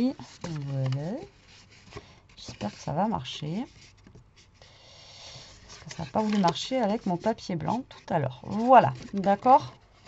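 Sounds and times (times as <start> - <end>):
card stock rustling: 0.0 - 3.0, 5.5 - 10.0.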